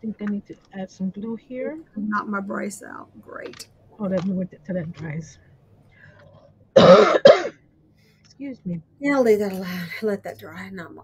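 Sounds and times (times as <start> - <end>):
woman coughing: 6.8 - 7.6.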